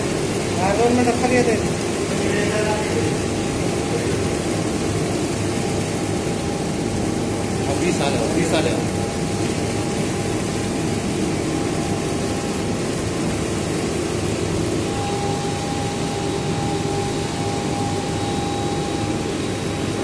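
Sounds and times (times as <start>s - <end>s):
pump running: 0.0s - 20.0s
steady whine: 0.0s - 20.0s.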